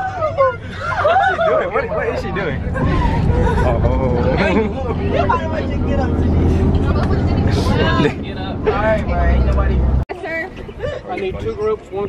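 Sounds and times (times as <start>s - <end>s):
bus engine drone: 0.0s - 12.0s
road noise: 0.0s - 12.0s
young people talking and calling: 0.0s - 12.0s.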